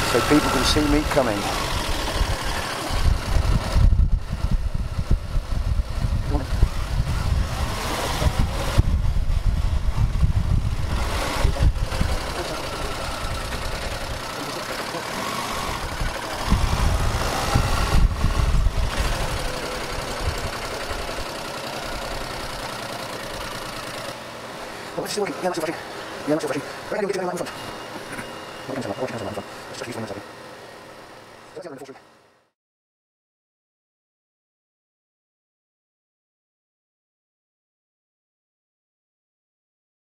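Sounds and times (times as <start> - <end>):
motorcycle engine: 0.0 - 32.2
road noise: 0.0 - 32.5
low rumbling: 1.0 - 14.3, 15.5 - 21.3.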